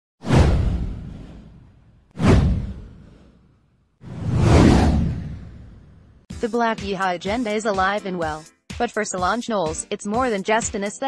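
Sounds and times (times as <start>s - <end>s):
deep boom: 0.2s - 3.4s, 4.1s - 6.2s.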